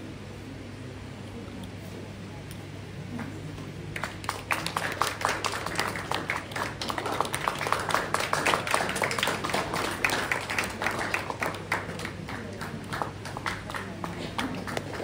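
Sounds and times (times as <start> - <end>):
audience applause: 3.9 - 15.0.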